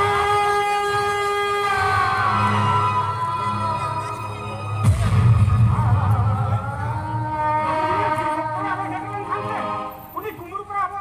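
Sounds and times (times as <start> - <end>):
steady low drone: 1.0 - 10.0.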